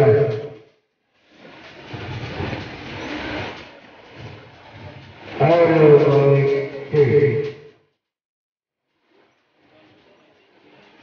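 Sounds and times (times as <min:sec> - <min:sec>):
swimmers splashing: 0:01.0 - 0:07.6
faint din of voices: 0:09.3 - 0:11.0.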